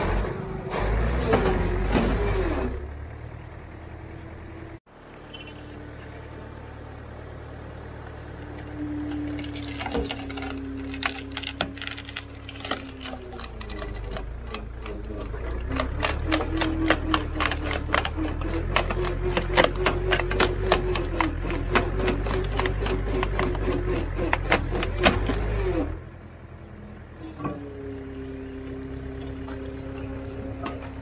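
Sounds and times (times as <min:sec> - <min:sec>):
hydraulic log splitter humming: 0:00.0 - 0:31.0
wood cracking and snapping: 0:08.5 - 0:25.6.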